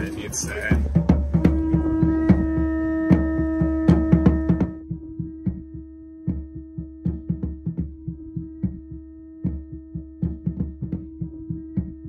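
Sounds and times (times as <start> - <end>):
sharp drum beats: 0.0 - 12.0.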